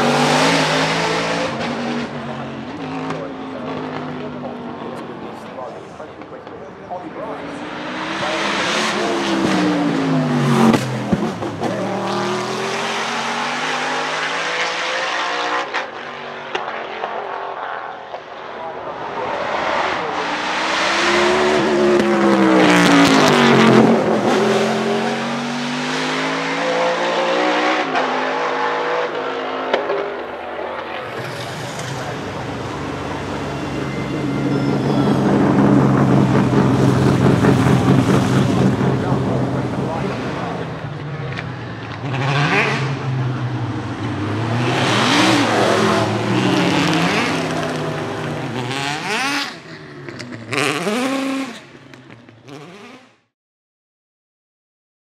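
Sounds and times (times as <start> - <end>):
race car engine accelerating: 0.0 - 17.1, 18.8 - 53.1.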